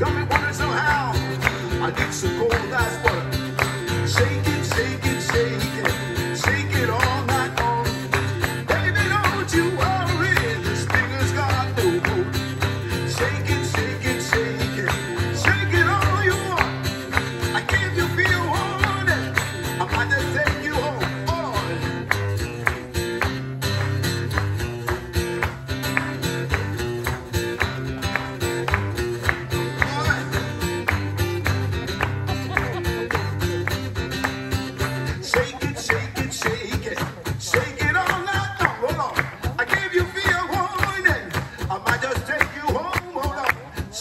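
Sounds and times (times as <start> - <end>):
strummed guitar rhythm: 0.0 - 44.0.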